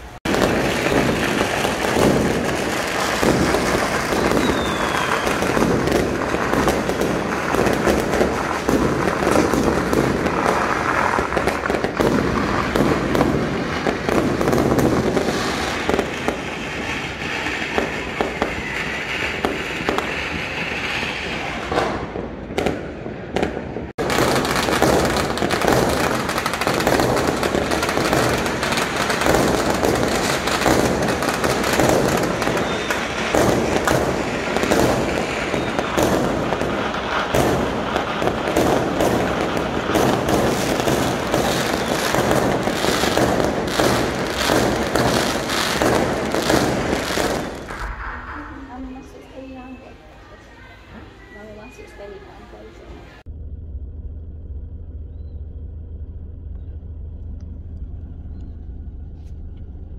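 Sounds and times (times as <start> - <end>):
fireworks and firecrackers crackling: 0.0 - 53.3.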